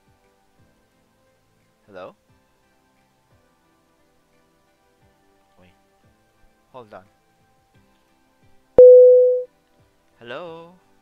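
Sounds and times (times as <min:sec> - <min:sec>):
hang-up tone beep: 0:08.8 - 0:09.5.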